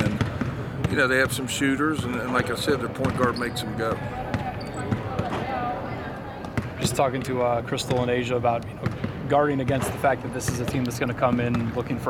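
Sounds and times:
basketballs bouncing on wood court: 0.0s - 1.4s, 3.0s - 3.4s, 4.3s - 5.4s, 6.4s - 6.9s, 7.9s - 11.9s
distant echoing activity: 0.0s - 12.0s.

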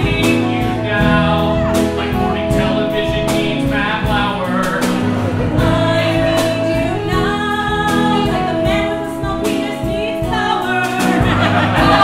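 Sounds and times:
live instrumental accompaniment: 0.0s - 12.0s
woman singing: 5.5s - 12.0s.

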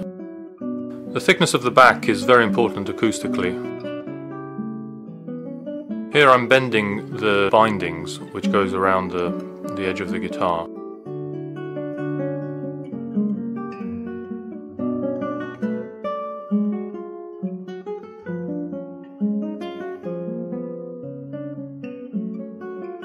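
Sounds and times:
acoustic guitar plucked melody: 0.0s - 23.0s.

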